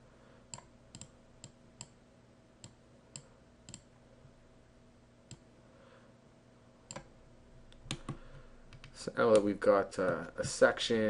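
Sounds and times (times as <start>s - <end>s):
low steady hum: 0.0s - 11.0s
computer mouse clicks: 0.5s - 2.0s, 2.6s - 3.9s, 6.9s - 7.1s, 7.7s - 9.5s.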